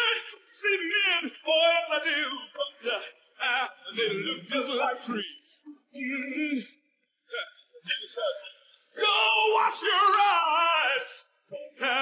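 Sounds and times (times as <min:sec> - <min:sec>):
man's broken vocal fragments: 0:00.0 - 0:06.6, 0:07.3 - 0:12.0.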